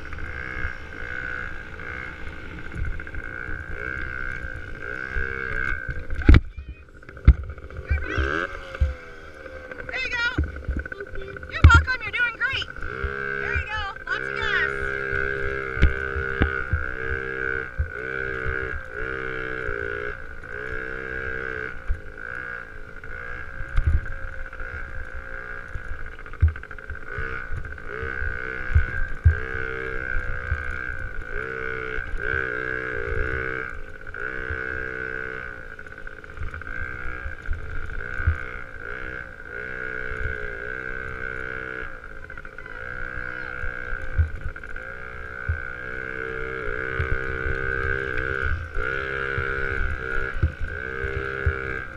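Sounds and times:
motocross bike engine revving: 0.0 - 51.9.

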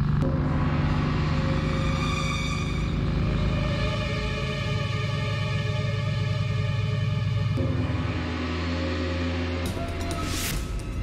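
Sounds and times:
low droning chord: 0.0 - 11.0.

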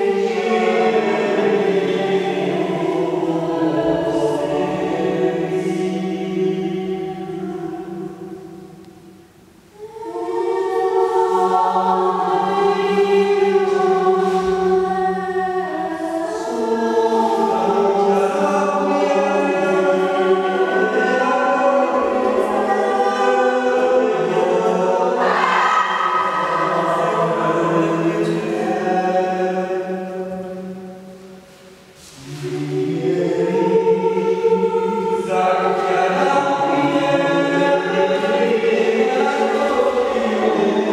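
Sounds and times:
choir singing held chords: 0.0 - 40.9.

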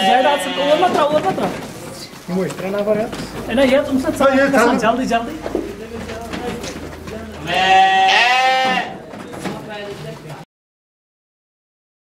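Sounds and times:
sheep bleating: 0.0 - 1.3, 3.8 - 5.0, 7.2 - 9.0.

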